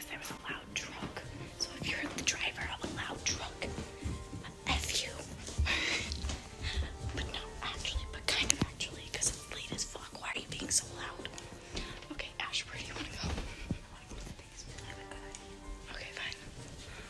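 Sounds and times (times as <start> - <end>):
faint music: 0.0 - 17.0.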